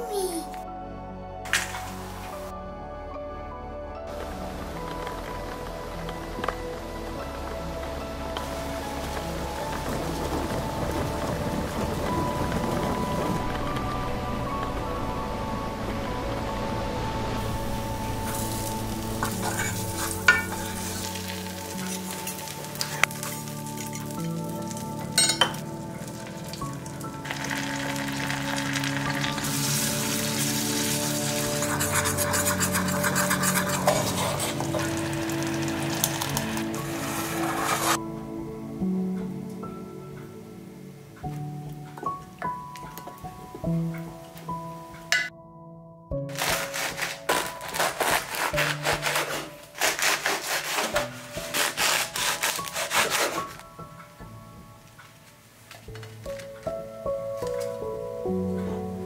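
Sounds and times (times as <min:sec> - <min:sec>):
soft background music: 0:00.0 - 0:59.0
sugar sizzling and bubbling in pan: 0:16.7 - 0:38.0
knife sawing through bread crust: 0:46.4 - 0:53.6.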